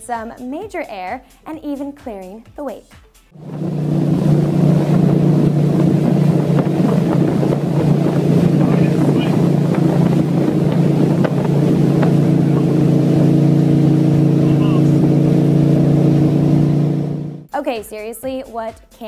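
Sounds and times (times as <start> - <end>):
motorboat engine drone: 3.4 - 17.5
wind buffeting microphone: 3.4 - 17.5.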